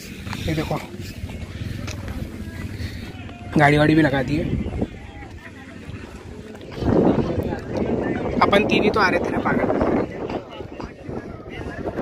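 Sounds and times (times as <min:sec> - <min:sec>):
people's voices: 0:00.0 - 0:12.0
wind buffeting microphone: 0:00.0 - 0:12.0.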